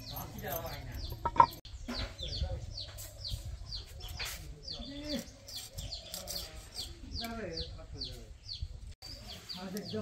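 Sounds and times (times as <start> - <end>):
small bird chirping: 0.0 - 10.0.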